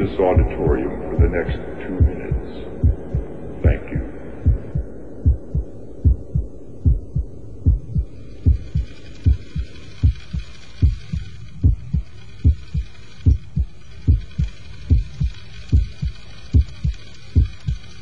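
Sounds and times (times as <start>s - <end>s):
heartbeat thumps: 0.0s - 17.9s
faint hiss: 0.0s - 18.0s.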